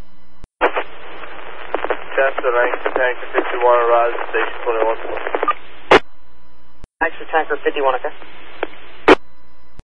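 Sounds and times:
open-channel radio hiss: 0.6s - 6.0s, 7.0s - 9.2s
radio click: 0.6s - 6.1s, 8.2s - 9.2s
radio squelch burst: 0.6s - 6.1s, 7.0s - 9.2s.

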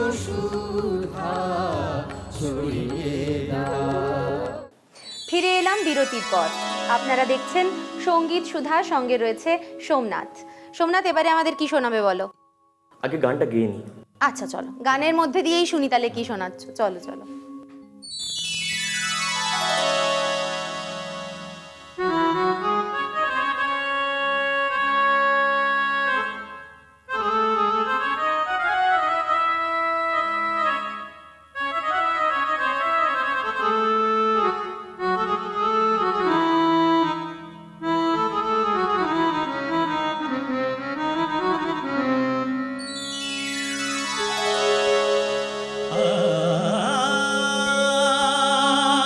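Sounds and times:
harmonium and keyboard playing: 0.0s - 12.1s, 14.2s - 49.0s
bright downward sweep: 5.0s - 9.1s, 18.0s - 22.4s, 42.8s - 46.7s.

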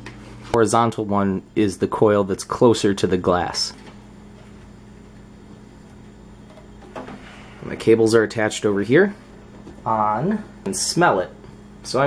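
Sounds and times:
electrical hum with low tones: 0.0s - 12.0s.

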